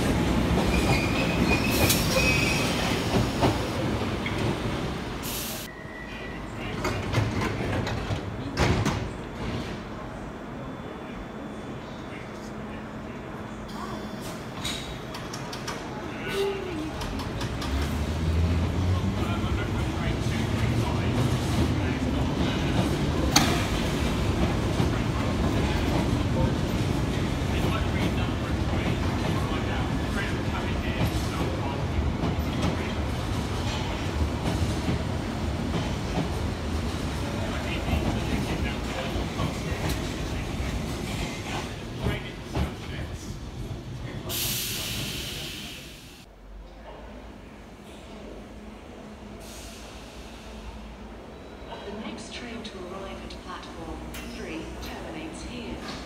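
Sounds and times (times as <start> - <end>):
wheels rumbling on rail: 14.0 - 45.8.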